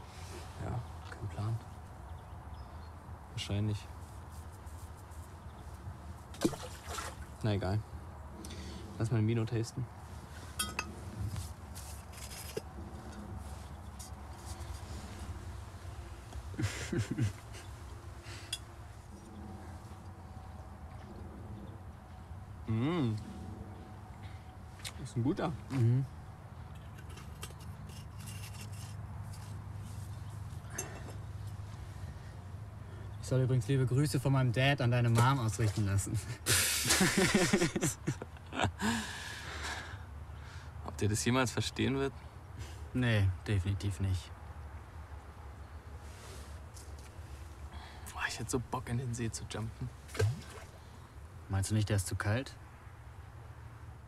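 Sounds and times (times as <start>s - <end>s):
rustling handling noise: 10.2s - 16.5s
glass bottle clink: 10.6s - 10.9s
people laughing: 16.5s - 17.8s, 36.2s - 39.1s.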